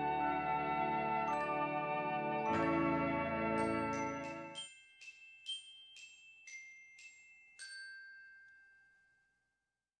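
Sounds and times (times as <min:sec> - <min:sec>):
bell-like chime: 0:00.0 - 0:09.8.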